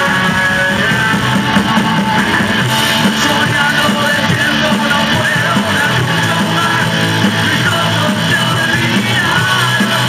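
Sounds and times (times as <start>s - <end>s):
drum kit: 0.0s - 10.0s
strummed electric guitars: 0.0s - 10.0s.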